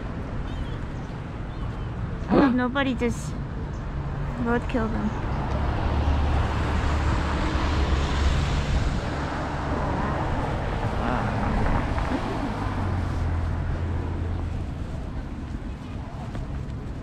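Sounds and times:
cars driving past: 0:00.0 - 0:17.0.

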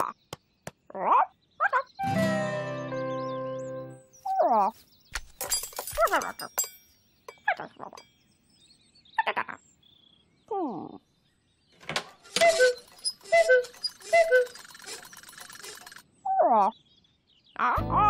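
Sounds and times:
clockwork clatter: 0:05.3 - 0:08.1, 0:12.3 - 0:16.0
short falling sliding sounds: 0:11.8 - 0:16.0
cuckoo clock bird calls: 0:12.3 - 0:16.4.

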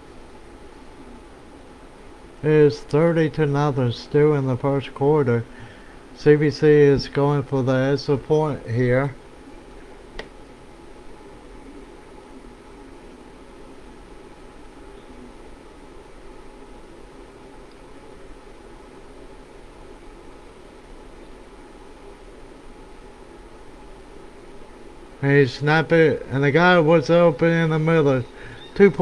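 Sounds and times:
faint background hiss: 0:00.0 - 0:29.0.

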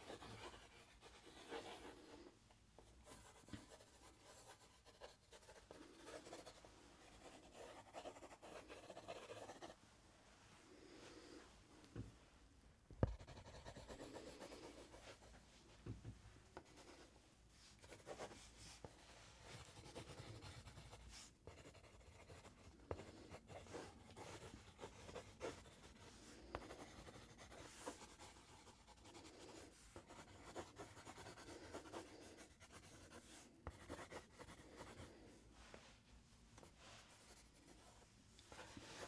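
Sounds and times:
pencil scratching on paper: 0:00.0 - 0:02.3, 0:03.0 - 0:09.8, 0:13.0 - 0:15.4, 0:17.8 - 0:35.2, 0:36.6 - 0:39.0.

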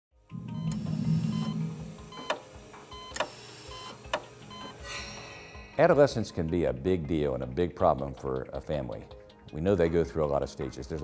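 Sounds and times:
low held chord: 0:00.3 - 0:02.8
sharp struck accents: 0:04.8 - 0:06.5.

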